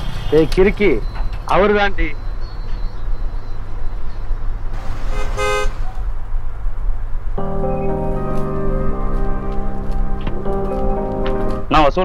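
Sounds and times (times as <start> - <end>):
vehicle horn toot: 5.0 - 6.0.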